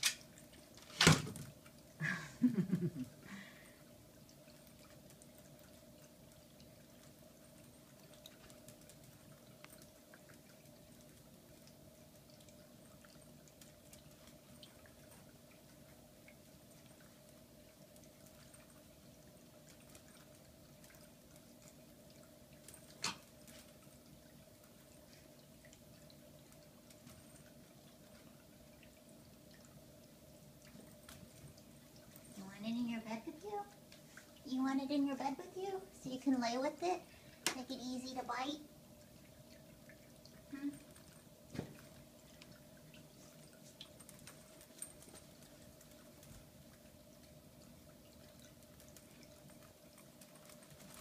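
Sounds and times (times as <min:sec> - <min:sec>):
faint steady hum: 0:00.0 - 0:51.0.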